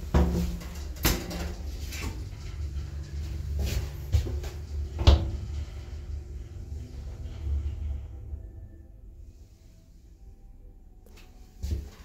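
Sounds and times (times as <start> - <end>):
elevator low rumble: 0.0 - 12.0.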